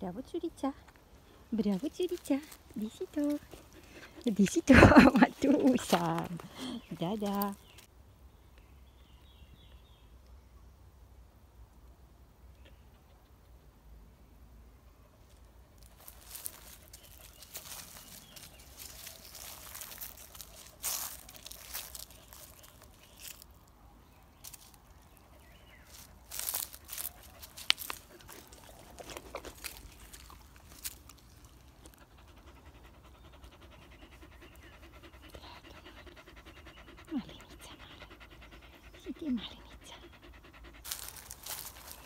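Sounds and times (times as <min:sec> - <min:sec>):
dog panting: 0:02.5 - 0:07.6, 0:25.2 - 0:42.0.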